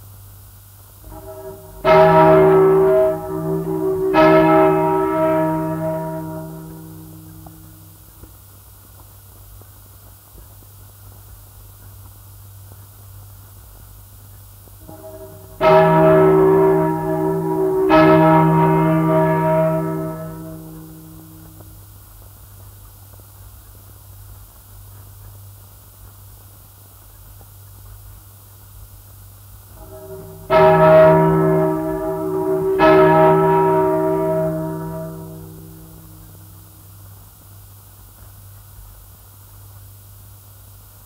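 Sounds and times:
record surface hiss: 0:00.0 - 0:41.0
large church bell tolling: 0:01.0 - 0:08.0, 0:14.8 - 0:21.8, 0:29.7 - 0:36.8
low hum: 0:01.0 - 0:08.1, 0:14.8 - 0:21.9, 0:29.7 - 0:37.2.

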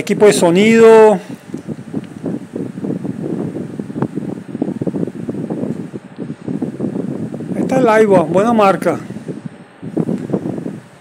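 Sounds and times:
low rumbling on microphone: 0:00.0 - 0:11.0.

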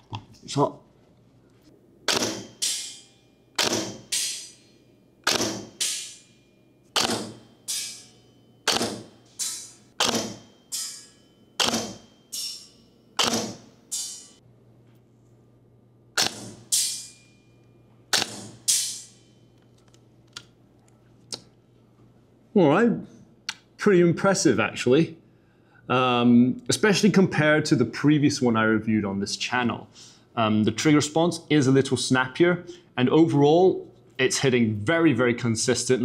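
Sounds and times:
airsoft rifle shots: 0:02.0 - 0:02.9, 0:03.6 - 0:04.5, 0:05.2 - 0:06.2, 0:07.0 - 0:07.5, 0:08.6 - 0:10.5, 0:11.6 - 0:12.0, 0:13.2 - 0:13.7, 0:16.2 - 0:17.0, 0:18.1 - 0:19.1.

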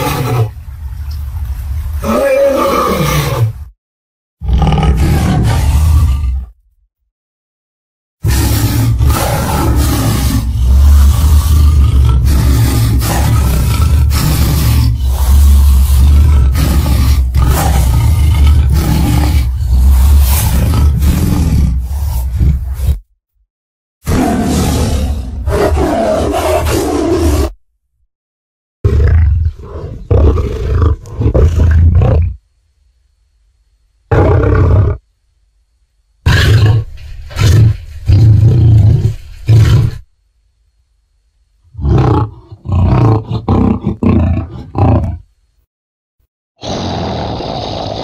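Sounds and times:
dinosaur roars: 0:04.4 - 0:06.6, 0:08.2 - 0:23.0, 0:24.1 - 0:27.6, 0:41.7 - 0:45.2.

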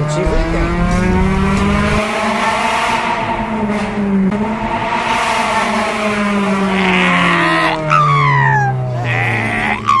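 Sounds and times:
car engine revs dropping: 0:00.0 - 0:06.8.

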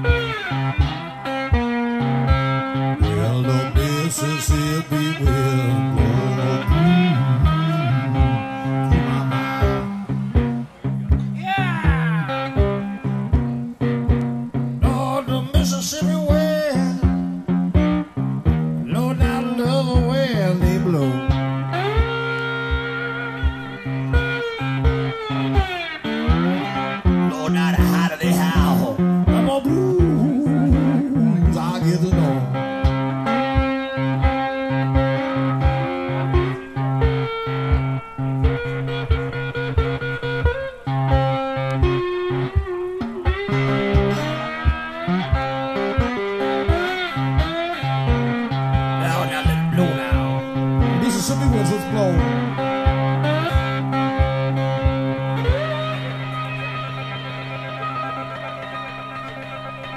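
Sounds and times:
blues guitar playing: 0:00.0 - 0:59.9.

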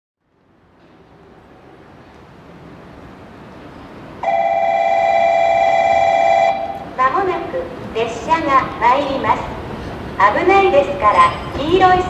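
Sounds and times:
loudspeaker electronic tone: 0:04.2 - 0:06.8
recorded woman's announcement: 0:07.0 - 0:09.5, 0:10.2 - 0:12.0.

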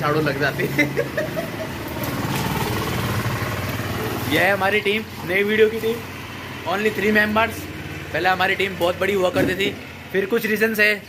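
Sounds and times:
vehicle engine running: 0:00.0 - 0:10.8
voices talking: 0:00.0 - 0:11.0.

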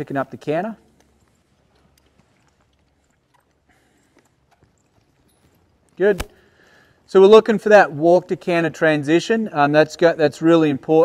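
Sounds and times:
horse hooves on soft dirt: 0:00.0 - 0:07.6.

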